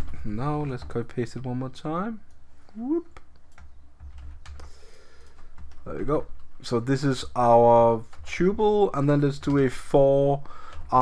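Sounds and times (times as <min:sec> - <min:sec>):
keystrokes on computer keyboard: 0:03.1 - 0:06.6, 0:10.6 - 0:11.0.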